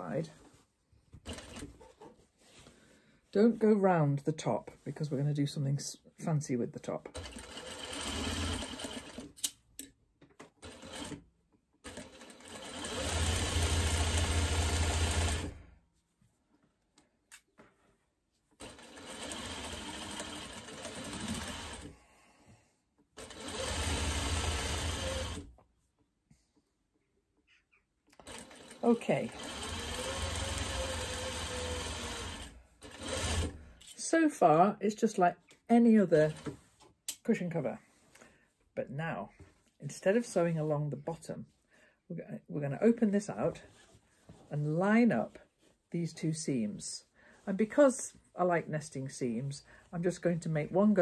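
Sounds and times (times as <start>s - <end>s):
sewing machine stitching: 1.2s - 1.9s, 7.0s - 9.5s, 10.4s - 11.2s, 11.8s - 15.6s, 18.6s - 21.9s, 23.2s - 25.5s, 28.2s - 33.6s, 36.2s - 36.6s.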